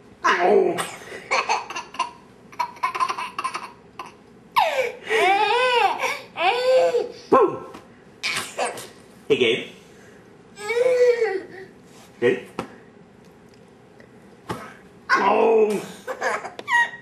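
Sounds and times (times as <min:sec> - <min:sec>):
toddler laughing: 0:01.3 - 0:07.0, 0:16.0 - 0:17.0.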